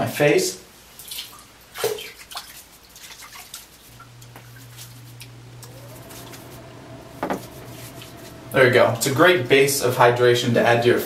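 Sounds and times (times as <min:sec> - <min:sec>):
steady low hum: 0:03.8 - 0:10.6.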